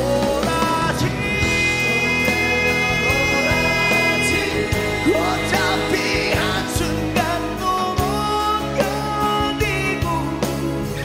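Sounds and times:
man singing a long high note: 0.0s - 10.6s
live rock band with guitar: 0.0s - 11.0s.

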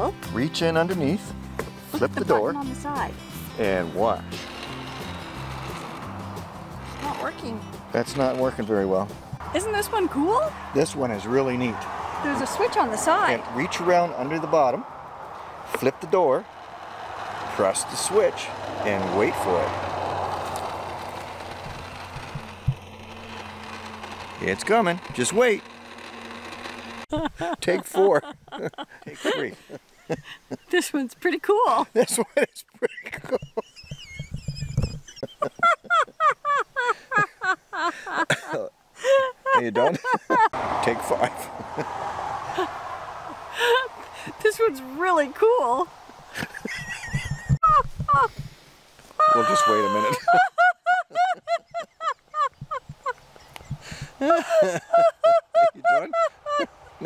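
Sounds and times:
small electric motor humming: 2.0s - 10.7s, 16.4s - 27.2s, 49.2s - 50.5s
high-pitched laughs: 27.1s - 30.7s, 32.7s - 40.6s, 43.5s - 44.0s, 46.3s - 48.3s, 49.2s - 53.2s, 53.8s - 57.0s.

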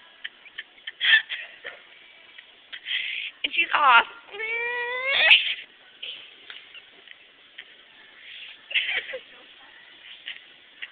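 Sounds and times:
child squealing: 4.4s - 5.6s.

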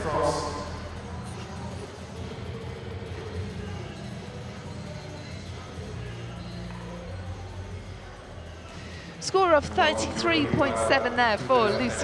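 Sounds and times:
background music with bass: 0.0s - 12.0s
crowd chatter murmur: 0.0s - 12.0s.

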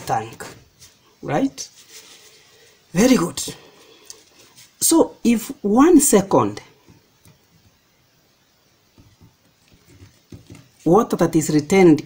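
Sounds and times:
man speaking: 1.2s - 1.8s, 2.9s - 3.8s.

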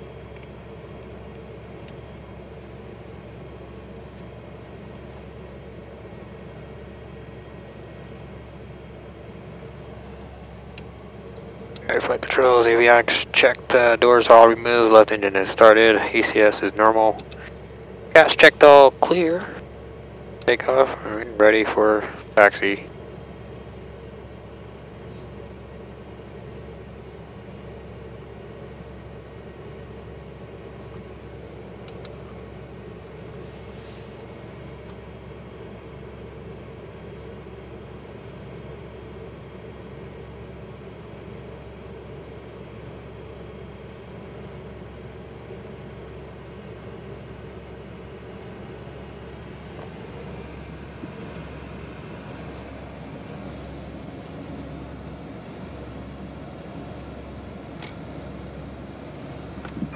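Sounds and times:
cabin air system hum: 0.0s - 59.9s
jet engine idling: 0.0s - 59.9s.

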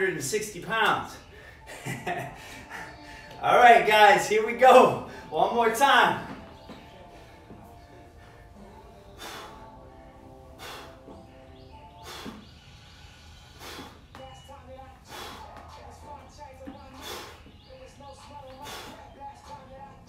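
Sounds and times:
quiet background music: 0.0s - 20.0s.

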